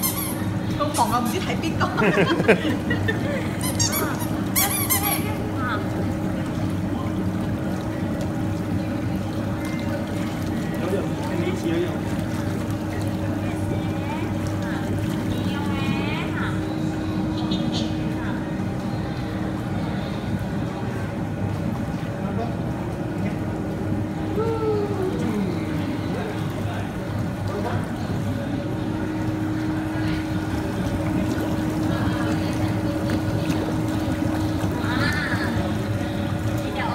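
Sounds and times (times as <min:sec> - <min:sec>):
bubbling churning water: 0:00.0 - 0:36.9
spa tub motor hum: 0:00.0 - 0:36.9.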